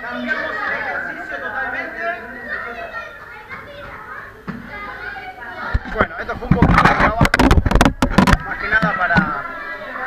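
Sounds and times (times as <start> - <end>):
children and adults chattering: 0.0 - 10.0.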